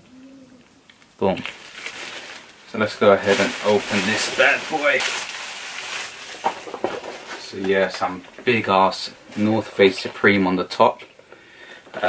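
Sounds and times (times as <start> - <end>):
plastic packaging crinkling: 0.9 - 11.3.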